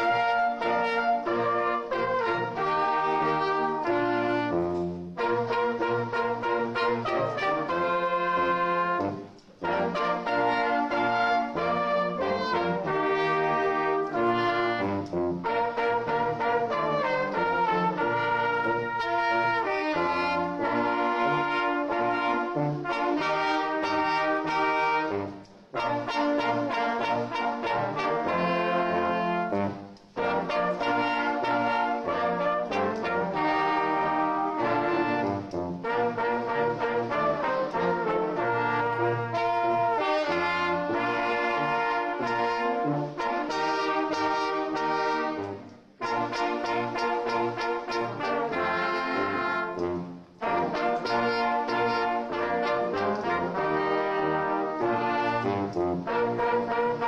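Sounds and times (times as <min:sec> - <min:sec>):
brass band playing sustained chords: 0:00.0 - 0:57.0.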